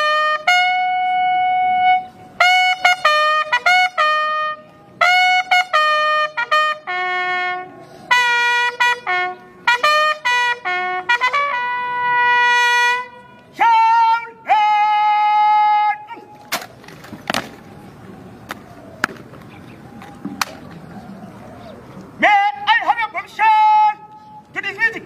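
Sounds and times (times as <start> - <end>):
bugle call: 0.0 - 16.6.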